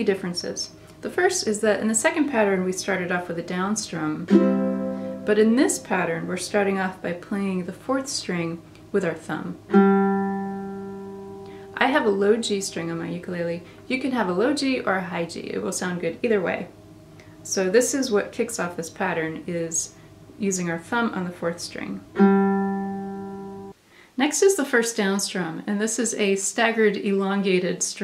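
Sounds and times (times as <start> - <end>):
ukulele string plucked: 4.2 - 5.9, 9.7 - 11.8, 22.2 - 23.7.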